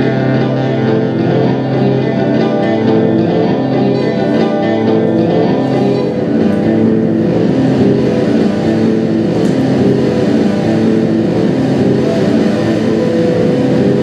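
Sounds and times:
noise music drone: 0.0 - 14.0.

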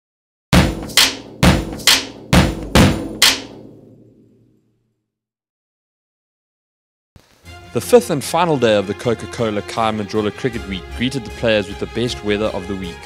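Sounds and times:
heavy percussive hits with ringing: 0.6 - 4.3.

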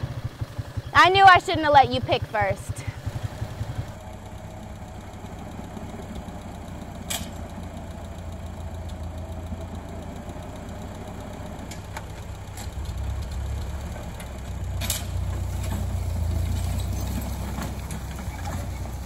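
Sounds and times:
tractor engine idling: 0.0 - 19.0.

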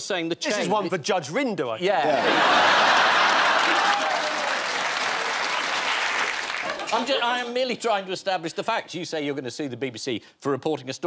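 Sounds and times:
audience laughing: 2.0 - 4.5, 6.4 - 7.4
audience applauding: 2.2 - 7.2.

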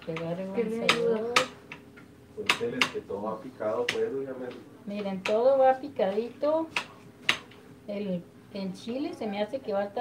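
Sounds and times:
woman talking: 0.0 - 1.5, 4.9 - 6.7, 7.9 - 10.0.

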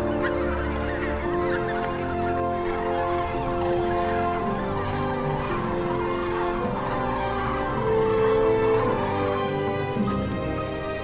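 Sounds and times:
music with long held notes: 0.0 - 11.0
waterbirds honking: 0.0 - 11.0.

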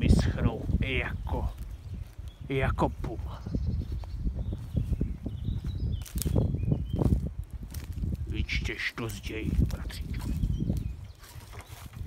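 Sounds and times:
footsteps through dry undergrowth: 0.0 - 12.0
low microphone rumble: 0.0 - 12.0.

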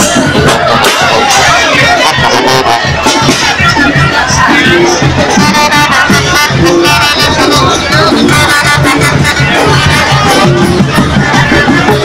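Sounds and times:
brass band music: 0.0 - 12.0
street crowd: 0.0 - 12.0
tuba bass line: 0.0 - 12.0.

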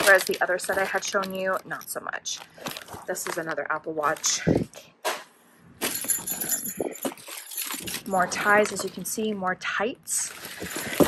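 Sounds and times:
rustling packaging: 0.0 - 4.7, 5.8 - 9.2, 10.1 - 11.0.

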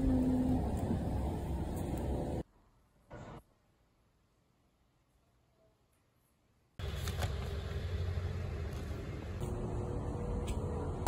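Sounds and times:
road traffic rumble: 0.0 - 2.5, 6.8 - 11.0.

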